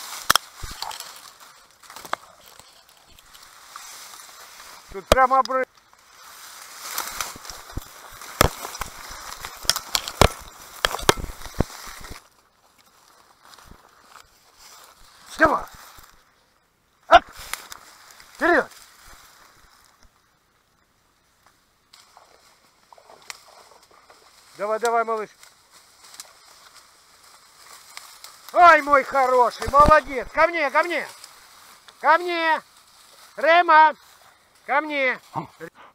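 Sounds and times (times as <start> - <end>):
dry reeds crackling and rustling: 0.0 - 35.7.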